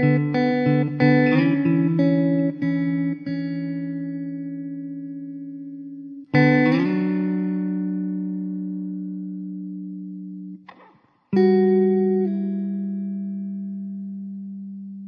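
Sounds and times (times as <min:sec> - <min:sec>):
guitar music: 0:00.0 - 0:15.0.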